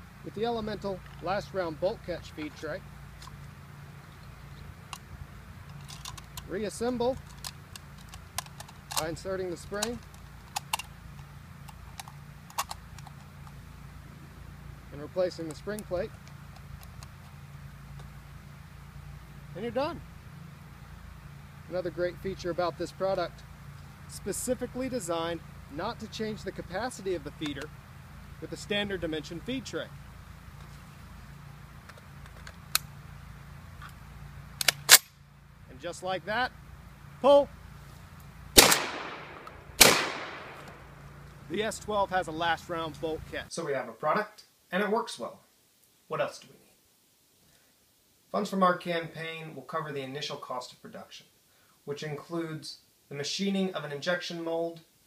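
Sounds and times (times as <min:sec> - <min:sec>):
steady low hum: 0:00.0 - 0:43.6
shotgun metallic clicks: 0:04.2 - 0:06.5, 0:07.1 - 0:13.6, 0:15.4 - 0:18.2, 0:27.3 - 0:27.7, 0:31.8 - 0:33.0, 0:34.6 - 0:35.2, 0:38.6 - 0:41.4
metal parts clicking: 0:05.7 - 0:06.5, 0:07.1 - 0:10.9, 0:11.6 - 0:13.6
loud gun snap: 0:34.6 - 0:35.2, 0:38.6 - 0:40.9.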